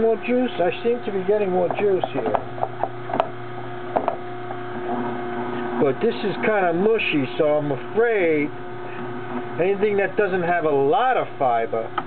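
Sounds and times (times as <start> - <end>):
juicer motor humming: 0.0 - 12.0.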